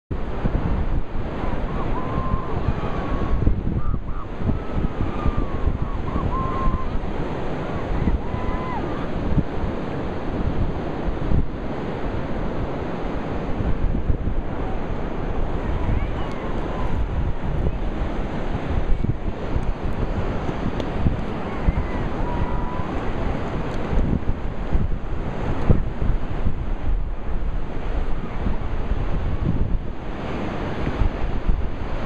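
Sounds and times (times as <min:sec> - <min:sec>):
ocean surf: 0:00.1 - 0:32.0
wind buffeting microphone: 0:00.1 - 0:32.0.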